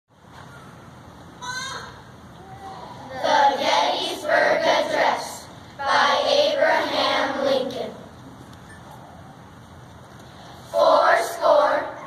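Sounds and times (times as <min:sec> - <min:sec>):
children singing in unison: 0:03.1 - 0:07.8, 0:10.7 - 0:12.0.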